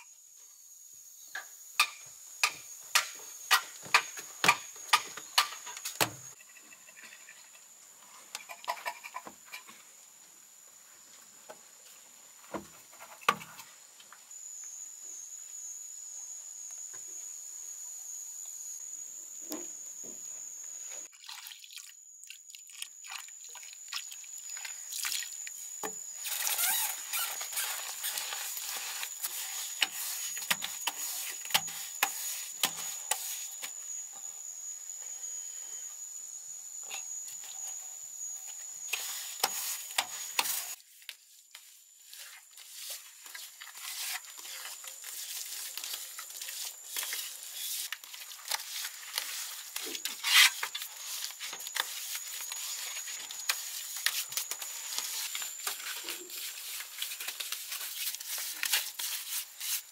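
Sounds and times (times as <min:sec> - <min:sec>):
high-pitched insect buzz: 0:14.3 - 0:21.1, 0:23.9 - 0:40.8, 0:42.0 - 0:59.9
hands mixing wet mortar: 0:41.5 - 0:59.9.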